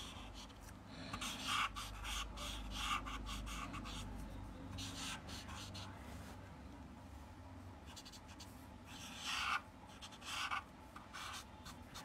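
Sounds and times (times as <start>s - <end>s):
marker scratching on paper: 0.0s - 6.0s, 7.9s - 12.0s.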